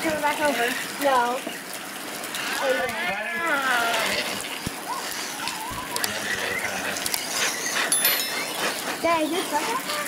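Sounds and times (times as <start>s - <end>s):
tyres driving on wet mud: 0.0s - 10.0s.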